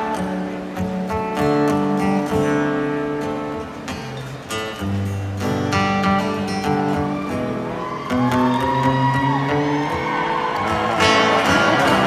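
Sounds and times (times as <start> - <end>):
guitar: 0.0 - 12.0
live band playing country ballad: 0.0 - 12.0.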